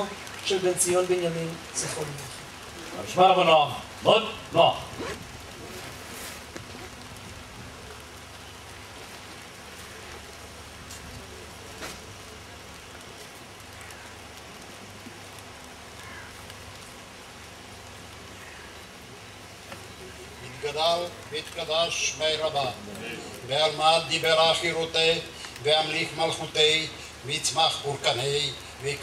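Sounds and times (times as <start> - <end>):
light rain falling: 0.0 - 29.0.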